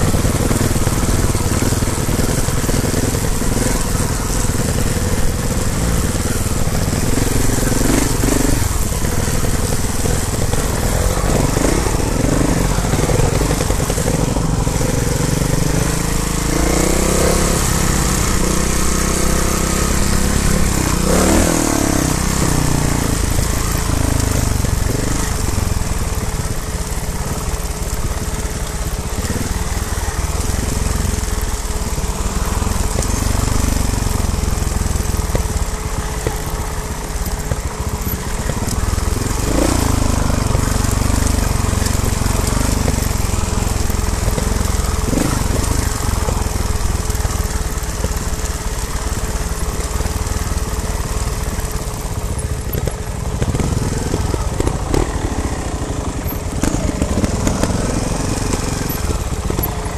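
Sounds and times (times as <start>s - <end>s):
motorcycle engine low rumble: 0.0s - 59.9s.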